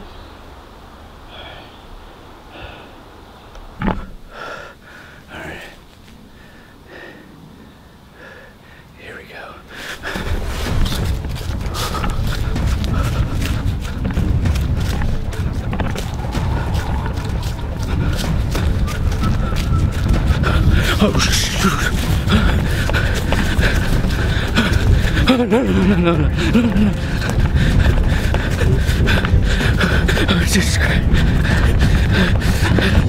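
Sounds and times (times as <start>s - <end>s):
person breathing hard: 2.5s - 3.1s, 3.9s - 33.0s
wind buffeting microphone: 9.8s - 33.0s
footsteps crunching dry leaves: 10.0s - 33.0s.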